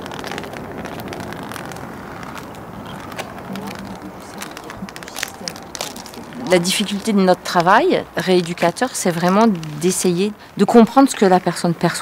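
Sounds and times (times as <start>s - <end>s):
street rumble: 0.0s - 12.0s
wind buffeting microphone: 0.0s - 12.0s.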